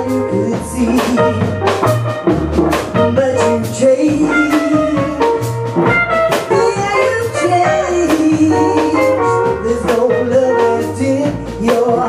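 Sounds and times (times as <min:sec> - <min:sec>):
woman singing: 0:00.0 - 0:01.8, 0:02.9 - 0:05.5, 0:06.3 - 0:12.0
drum kit: 0:00.0 - 0:12.0
electric guitar: 0:00.0 - 0:12.0
upright bass: 0:00.0 - 0:12.0.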